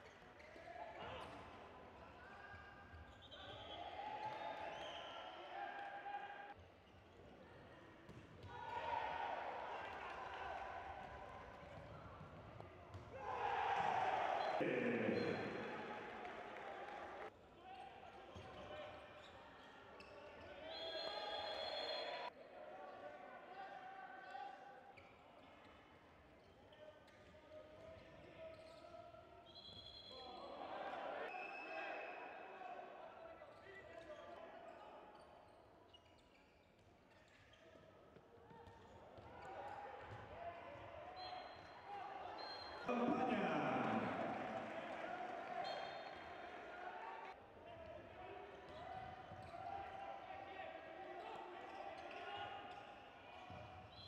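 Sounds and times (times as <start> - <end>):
echoing voices in sports hall: 0.0 - 54.0
ball bouncing on court: 11.6 - 13.2
referee whistle: 20.6 - 22.3.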